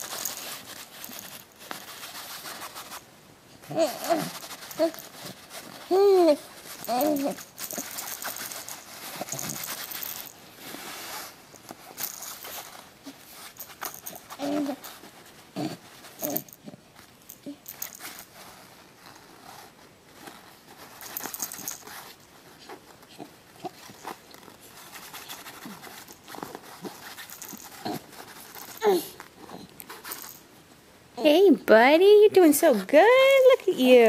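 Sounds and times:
plush toy rustling and jingling: 0.0 - 34.0
baby grunting: 3.7 - 5.0, 15.6 - 16.5.

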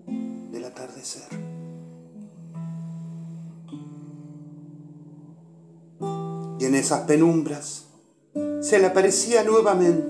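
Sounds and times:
acoustic guitar plucked softly: 0.0 - 10.0.

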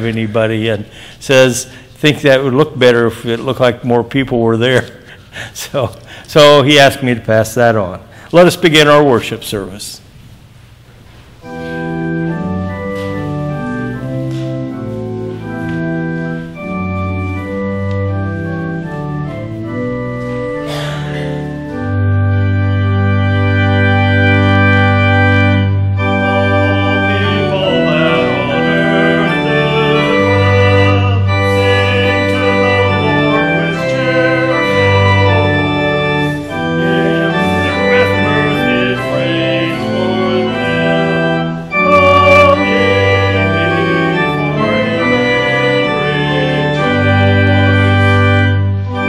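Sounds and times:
church organ playing chords: 0.0 - 10.0, 11.3 - 49.0.

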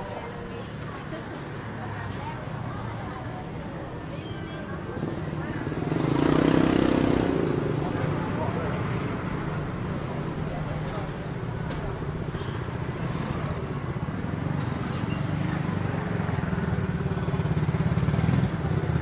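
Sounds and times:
scooter and car traffic: 0.0 - 19.0.

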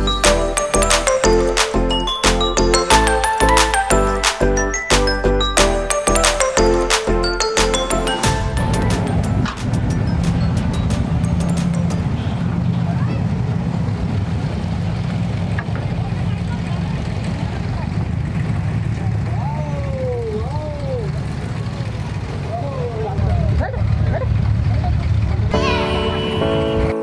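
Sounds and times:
boat diesel engine running: 0.0 - 26.8.

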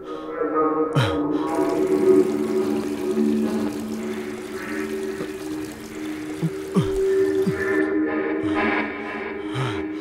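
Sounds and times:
background music: 0.0 - 10.0
tap water pouring into basin: 1.5 - 7.9.

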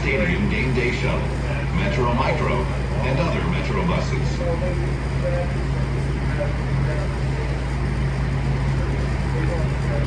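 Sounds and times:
light-rail car running hum: 0.0 - 10.0.

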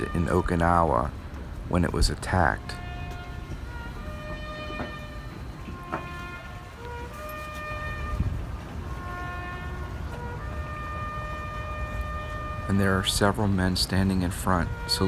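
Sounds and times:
solo brass horn melody: 0.0 - 1.2, 2.0 - 15.0.

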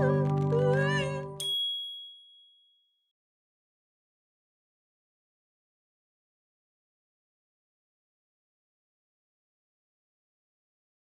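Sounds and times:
soundtrack music: 0.0 - 1.4
wavering voice: 0.0 - 1.4
bright chime ding: 1.4 - 2.7.

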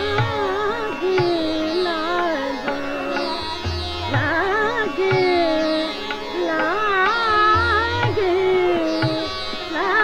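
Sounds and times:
woman singing classical vocals: 0.0 - 10.0.

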